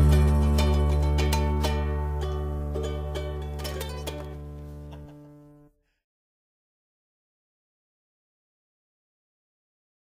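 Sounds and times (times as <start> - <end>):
instrumental music: 0.0 - 5.8.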